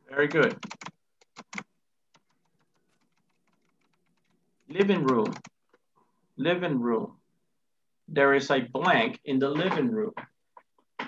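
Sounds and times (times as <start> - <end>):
computer keyboard typing: 0.4 - 4.4, 5.0 - 5.6.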